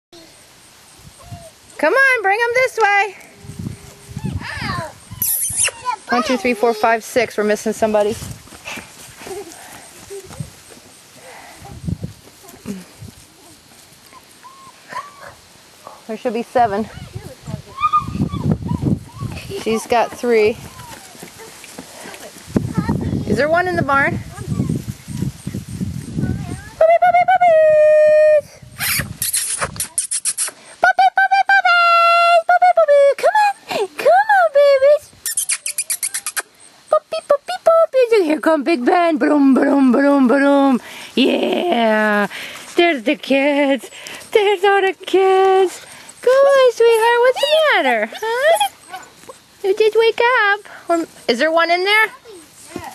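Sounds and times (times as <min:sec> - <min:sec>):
rustling in grass: 0:00.4 - 0:26.9, 0:40.7 - 0:52.9
high-pitched vocal cries: 0:03.2 - 0:07.0, 0:16.9 - 0:19.8, 0:26.3 - 0:37.9, 0:46.2 - 0:49.3
puppies yipping: 0:03.2 - 0:07.0, 0:13.3 - 0:15.4, 0:16.9 - 0:22.4, 0:24.4 - 0:25.6, 0:35.2 - 0:37.4, 0:45.7 - 0:49.5.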